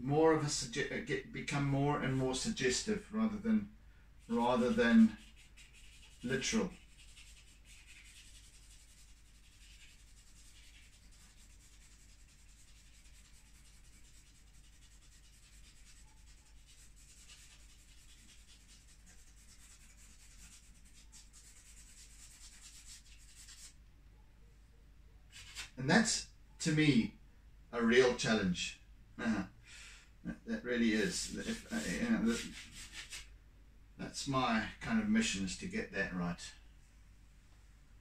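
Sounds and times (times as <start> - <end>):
art medium scratching on paper: 4.2 - 23.8, 25.3 - 25.8, 30.7 - 33.3.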